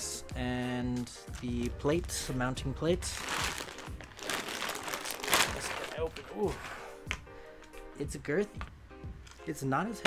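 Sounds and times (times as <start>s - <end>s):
background music: 0.0s - 10.0s
plastic packaging crinkling: 3.0s - 6.7s.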